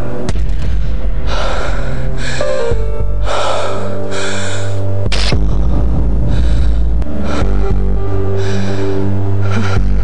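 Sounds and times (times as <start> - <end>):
background music with deep bass: 0.0 - 10.0.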